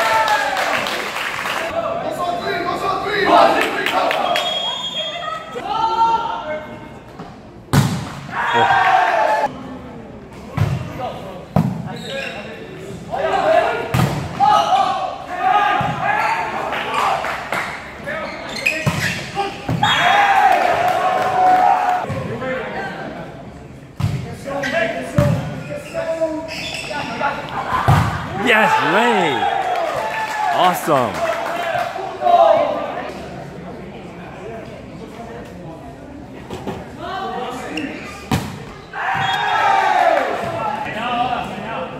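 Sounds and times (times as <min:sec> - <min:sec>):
players calling out: 0:28.3 - 0:29.6, 0:30.5 - 0:31.2.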